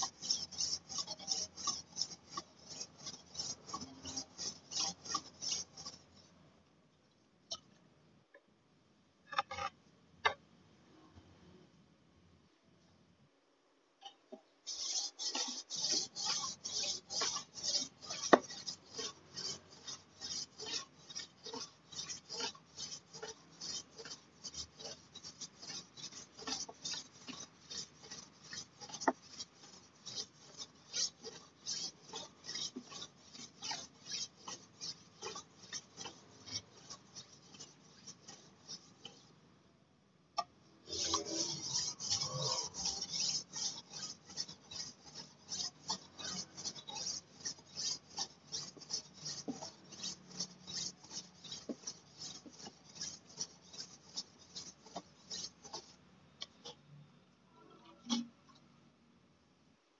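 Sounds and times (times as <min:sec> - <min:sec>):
blade scraping on whetstone: 0:00.0 - 0:06.3, 0:14.7 - 0:39.3, 0:40.8 - 0:56.8.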